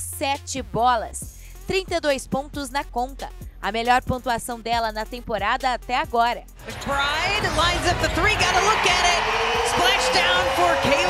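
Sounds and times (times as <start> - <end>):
arena crowd noise: 6.6 - 11.0
crowd cheering: 6.6 - 11.0
sports commentator talking: 6.6 - 11.0.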